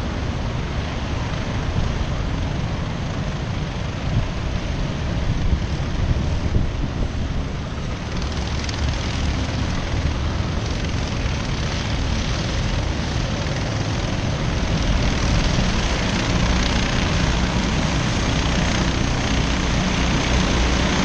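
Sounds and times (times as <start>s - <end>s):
kart engines buzzing: 7.5s - 21.0s.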